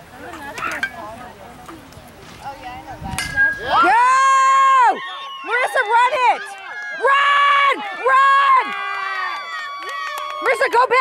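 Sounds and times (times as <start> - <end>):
spectators' voices: 0.0 - 11.0
crowd cheering: 3.4 - 11.0.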